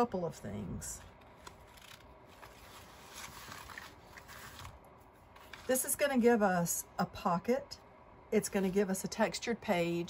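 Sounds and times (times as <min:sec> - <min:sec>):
paper pages rustling: 0:01.1 - 0:06.0.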